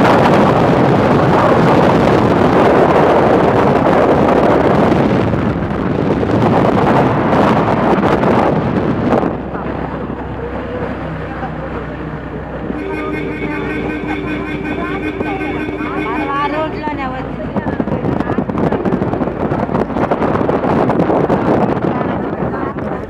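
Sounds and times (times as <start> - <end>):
vehicle low rumble: 0.0 - 23.0
wind rushing over microphone: 0.0 - 23.0
steady pitched tones: 12.6 - 17.9.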